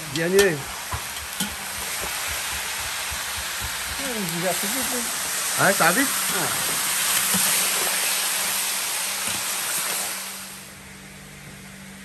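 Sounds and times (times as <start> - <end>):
meat sizzling in a pan: 0.0 - 10.8.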